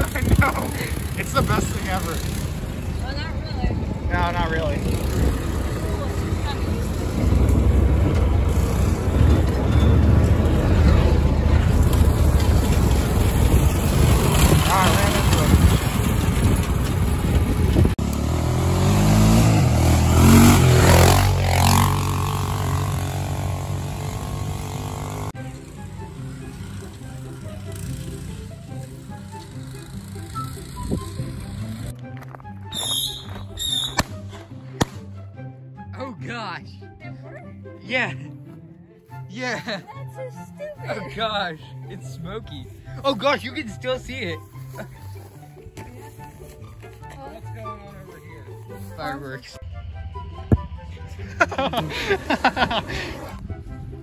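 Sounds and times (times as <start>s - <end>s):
wind rumble: 0.0s - 21.1s
off-road vehicle engine revving: 0.0s - 25.4s
driving over rough ground: 0.0s - 35.0s, 39.6s - 54.0s
background music: 18.3s - 54.0s.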